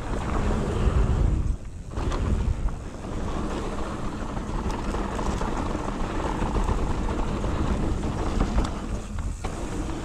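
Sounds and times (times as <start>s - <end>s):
bike clicks and rattles: 0.0s - 10.0s
tyre noise on loose dirt: 0.0s - 10.0s
wind rushing over microphone: 0.0s - 10.0s.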